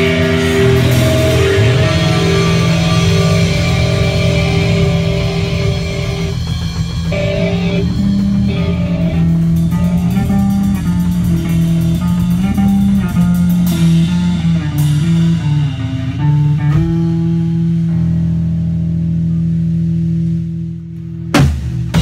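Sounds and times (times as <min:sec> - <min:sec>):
cymbal crashes: 0:00.0 - 0:11.4
punk band playing: 0:00.0 - 0:22.0.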